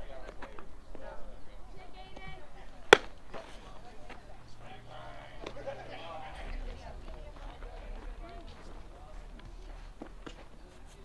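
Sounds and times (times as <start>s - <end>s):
baseball smacking into leather mitt: 2.9s - 3.5s.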